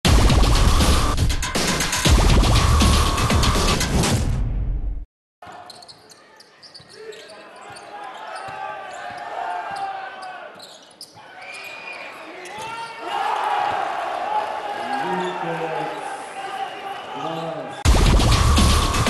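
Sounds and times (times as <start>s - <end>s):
arena crowd cheering: 7.5s - 10.6s, 11.2s - 17.9s.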